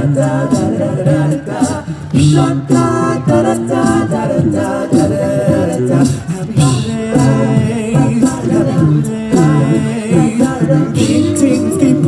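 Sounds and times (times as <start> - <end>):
male a cappella group singing: 0.0 - 12.0.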